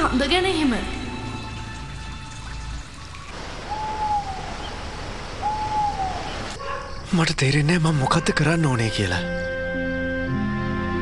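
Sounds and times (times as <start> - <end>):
owl hooting: 3.6 - 6.8.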